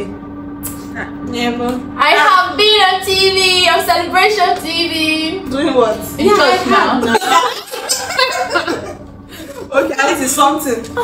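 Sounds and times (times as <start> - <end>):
people speaking: 0.0 - 11.0
women laughing: 6.2 - 10.2.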